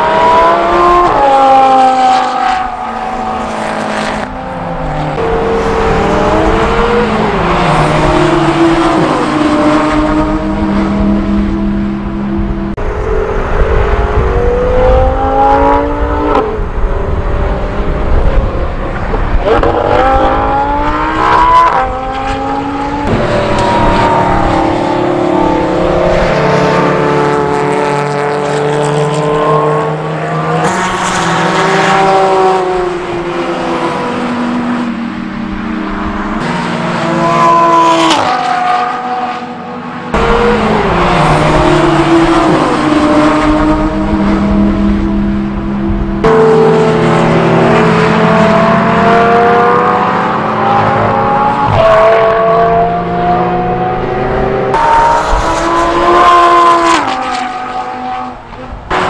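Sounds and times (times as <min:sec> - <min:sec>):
sports cars racing past: 0:00.0 - 0:59.0.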